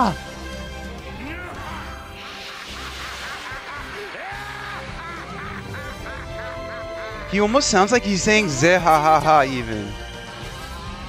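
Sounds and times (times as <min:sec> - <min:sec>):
anime soundtrack music: 0:00.0 - 0:11.0
man's cartoonish laugh: 0:02.2 - 0:08.9.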